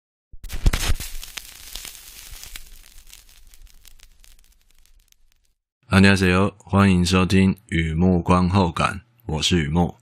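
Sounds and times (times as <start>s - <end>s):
crackling with sharp clicks: 0.4s - 5.7s.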